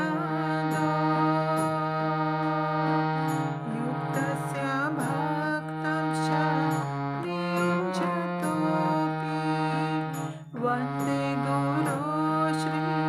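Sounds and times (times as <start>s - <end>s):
harmonium playing slow melody: 0.0s - 13.0s.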